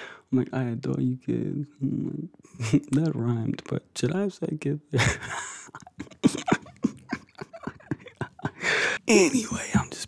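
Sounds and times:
man laughing breathily: 5.0 - 9.0.

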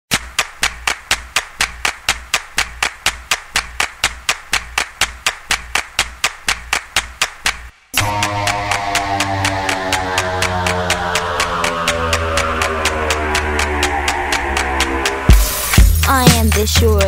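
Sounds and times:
electronic clap-like clicks: 0.1 - 16.7
low bass pulse: 8.0 - 16.1.

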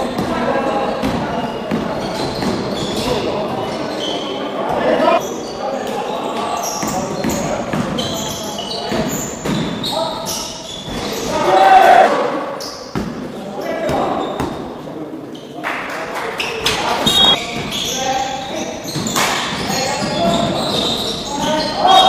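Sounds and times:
shoe squeaks: 0.0 - 11.8, 12.5 - 13.0, 13.6 - 14.6, 16.4 - 22.0
players' voices: 0.0 - 22.0
ball bouncing on wooden court: 12.9 - 14.6.

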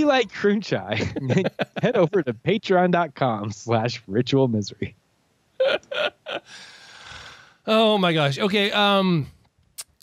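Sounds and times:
person laughing: 0.9 - 2.4, 5.6 - 6.7
long breathy exhale: 6.5 - 7.6.

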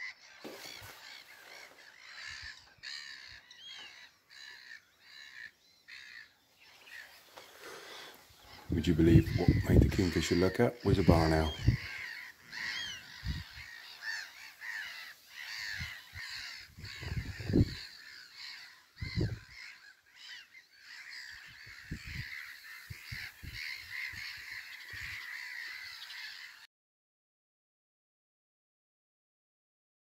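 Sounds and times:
birds chirping: 0.0 - 26.7.

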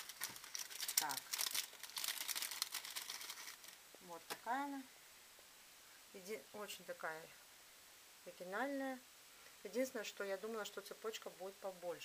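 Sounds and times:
plastic bag crinkling: 0.0 - 3.8.

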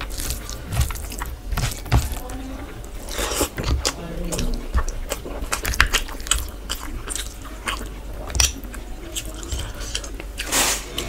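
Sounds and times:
mouth chewing with wet smacks: 0.0 - 11.0.

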